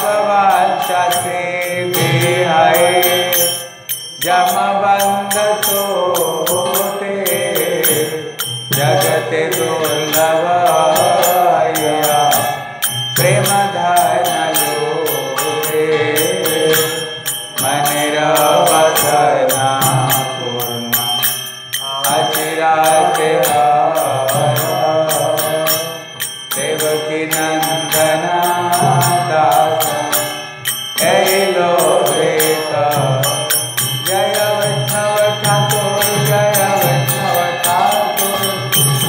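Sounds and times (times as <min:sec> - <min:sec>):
chanting sung to a melody: 0:00.0 - 0:39.0
fast percussive beat: 0:00.0 - 0:39.0.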